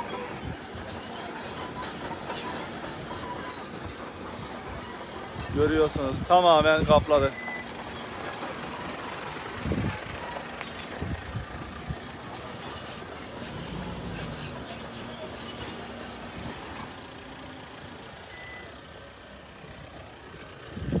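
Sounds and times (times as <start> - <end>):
low engine-like hum: 0.0 - 21.0
outdoor rumble and hiss: 0.0 - 21.0.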